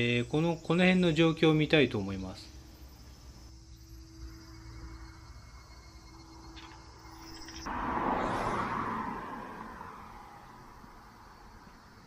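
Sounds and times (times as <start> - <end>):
car passing: 4.7 - 12.0.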